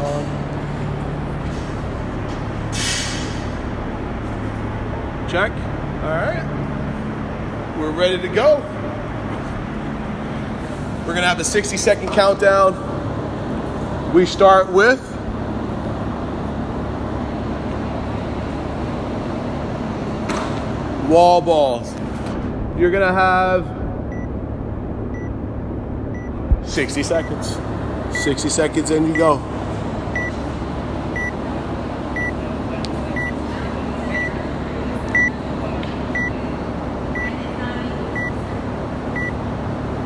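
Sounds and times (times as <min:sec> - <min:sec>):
steady low hum: 0:00.0 - 0:40.0
short hiss: 0:02.7 - 0:03.4.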